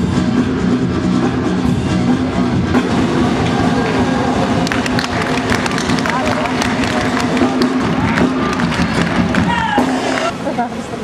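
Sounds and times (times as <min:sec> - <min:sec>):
show music from sound system: 0:00.0 - 0:10.3
crowd noise: 0:00.0 - 0:11.0
sharp claps: 0:04.6 - 0:10.3.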